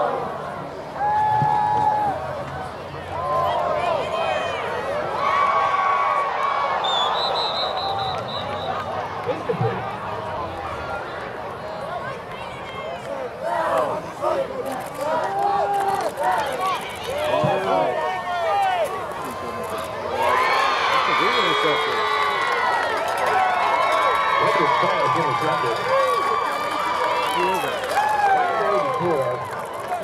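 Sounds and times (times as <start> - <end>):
crowd shouting and cheering: 0.0 - 30.0.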